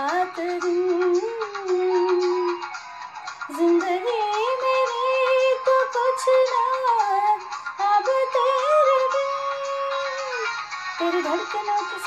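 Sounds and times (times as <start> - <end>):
woman singing wordless melody: 0.0 - 2.8, 3.5 - 12.0.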